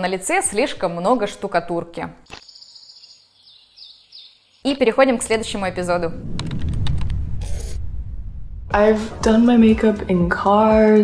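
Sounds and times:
low bass rumble: 0:05.2 - 0:10.2.

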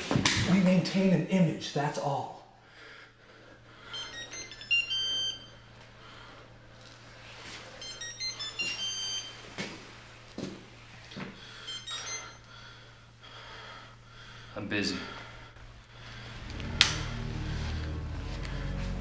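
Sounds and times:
cell phone ringtone: 0:03.8 - 0:09.7, 0:11.5 - 0:12.5.

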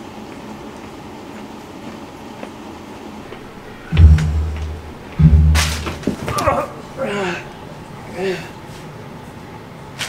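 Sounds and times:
low rumble of room noise: 0:03.2 - 0:09.9.

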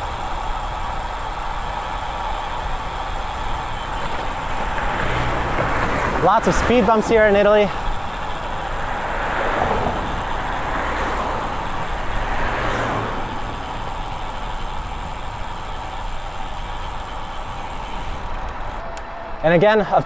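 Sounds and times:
bicycle road noise: 0:00.0 - 0:20.0.

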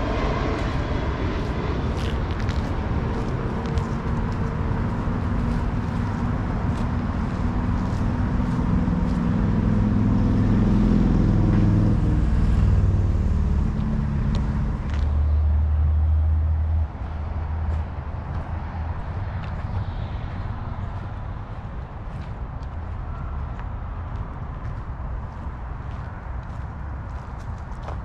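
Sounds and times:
passing traffic engine rumble: 0:00.0 - 0:28.0.

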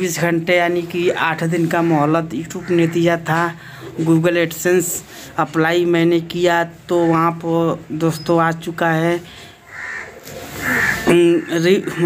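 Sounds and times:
crow cawing: 0:02.4 - 0:03.3, 0:09.6 - 0:12.0.

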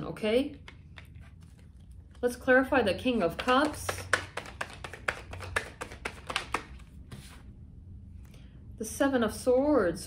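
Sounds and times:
cards being shuffled: 0:03.2 - 0:07.4.

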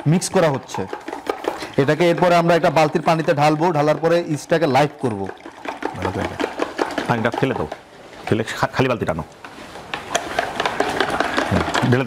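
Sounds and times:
water splashing in a bucket: 0:00.0 - 0:08.8, 0:10.1 - 0:12.0
man talking: 0:01.8 - 0:05.4, 0:06.0 - 0:06.4, 0:07.1 - 0:09.3, 0:11.5 - 0:12.0.

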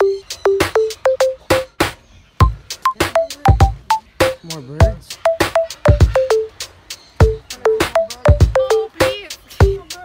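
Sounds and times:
electronic beat with plucked notes: 0:00.0 - 0:10.0.

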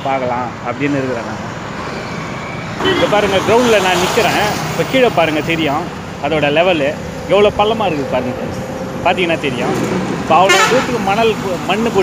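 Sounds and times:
man talking: 0:00.0 - 0:01.4, 0:02.8 - 0:12.0
road traffic noise: 0:00.0 - 0:12.0.

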